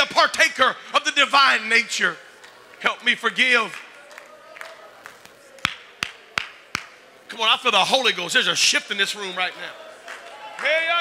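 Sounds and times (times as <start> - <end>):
hand clap: 3.7 - 7.0.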